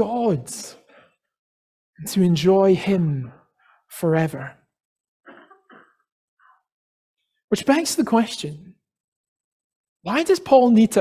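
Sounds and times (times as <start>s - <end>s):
person clearing throat: 5.3s - 6.0s.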